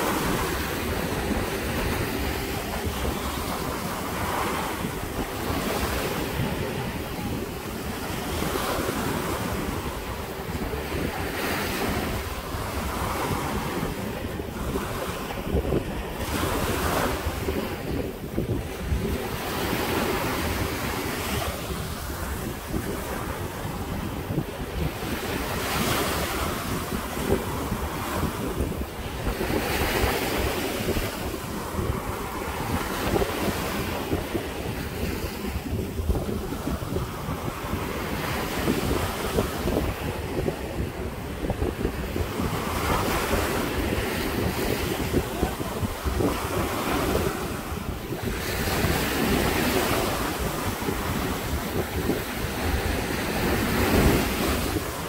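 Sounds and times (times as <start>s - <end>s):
waves breaking on rocky shore: 0.0s - 55.0s
wind rumbling on microphone: 0.0s - 55.0s.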